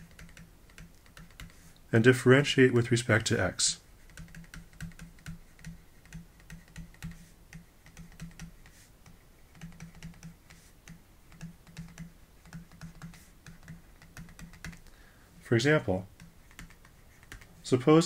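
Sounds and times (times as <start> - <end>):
stylus tapping on pen tablet: 0.0 - 1.7, 4.0 - 14.9, 16.1 - 17.5.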